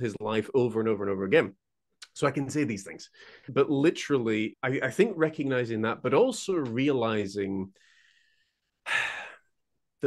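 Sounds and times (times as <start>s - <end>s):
man speaking: 0.0s - 7.8s
man breathing in: 7.8s - 9.5s.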